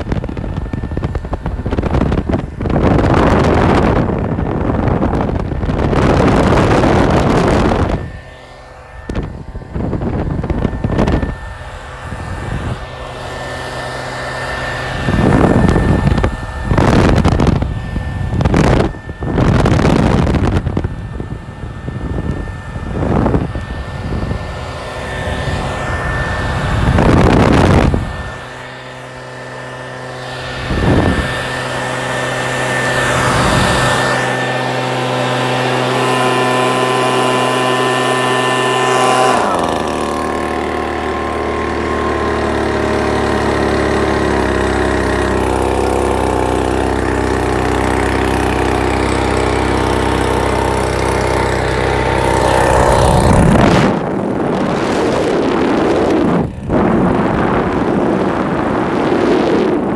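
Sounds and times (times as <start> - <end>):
air rushing over microphone: 0.0 - 59.9
leaf blower engine running: 0.0 - 59.9.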